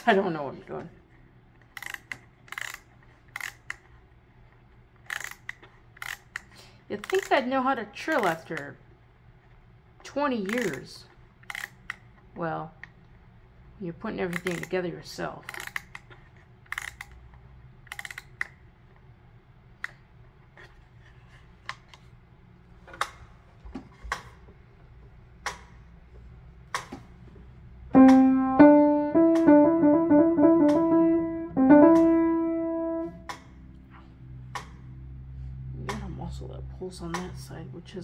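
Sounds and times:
piano phrase with trill: 0:27.9 - 0:33.3.

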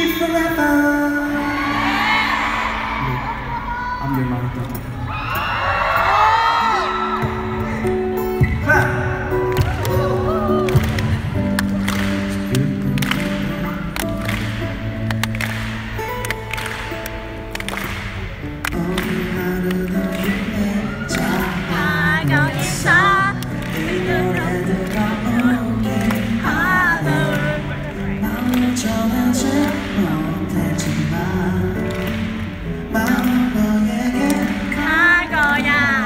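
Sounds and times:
crowd cheering: 0:01.2 - 0:28.8
acoustic guitar chords: 0:06.3 - 0:36.0.

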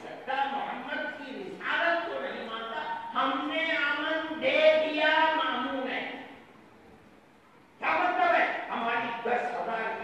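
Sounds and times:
man speaking over pa system: 0:00.0 - 0:06.4, 0:07.8 - 0:10.0.

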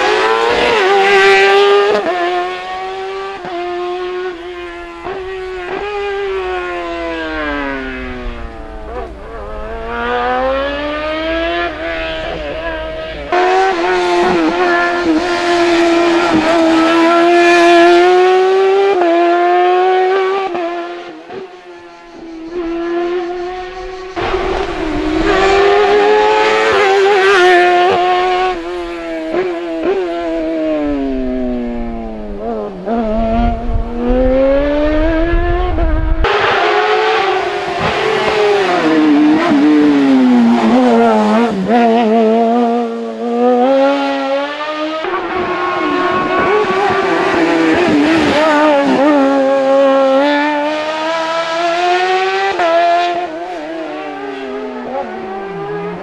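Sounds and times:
race car engine revving: 0:00.0 - 0:56.0.

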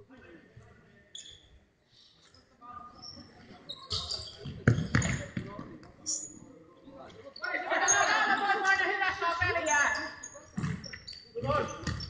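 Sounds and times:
shoes squeaking on wooden floor: 0:03.0 - 0:06.4.

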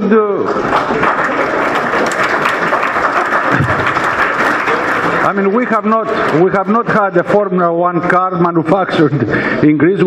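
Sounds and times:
audience applauding: 0:00.4 - 0:07.2.

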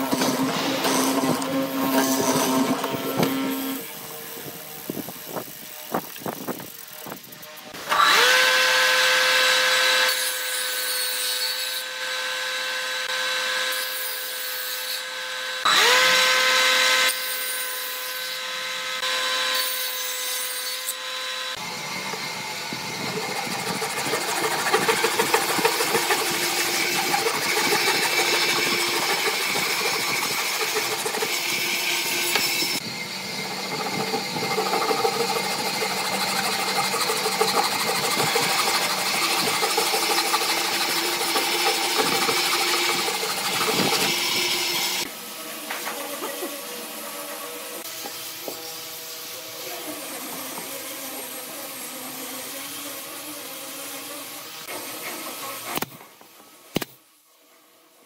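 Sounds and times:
hand saw cutting wood: 0:00.0 - 0:56.0.

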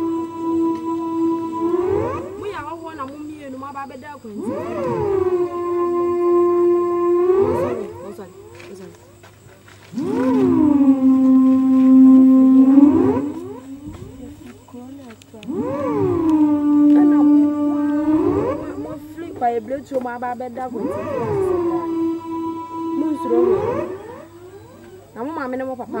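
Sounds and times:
voices in long sliding calls: 0:00.0 - 0:26.0.

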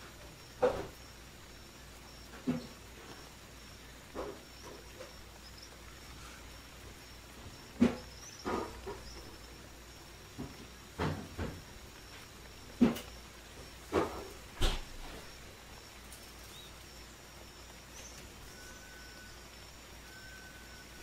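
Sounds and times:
thin high tone: 0:18.0 - 0:21.0.

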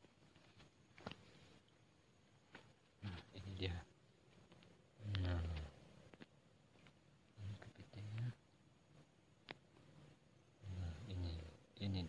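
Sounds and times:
short low vocal sounds: 0:10.6 - 0:12.0.

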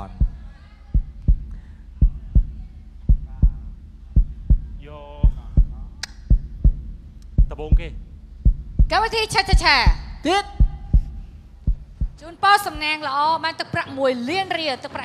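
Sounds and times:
deep low double thumps: 0:00.0 - 0:12.3.

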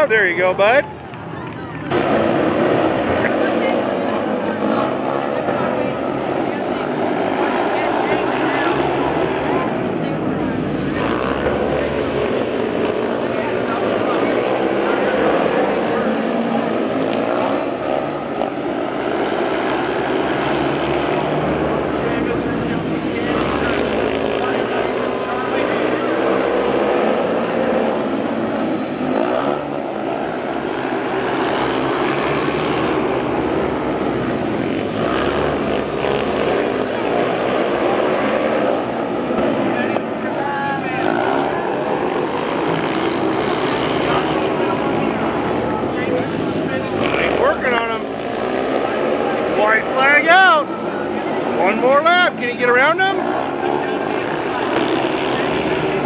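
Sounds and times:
motorcycle engines racing: 0:00.0 - 0:56.0.

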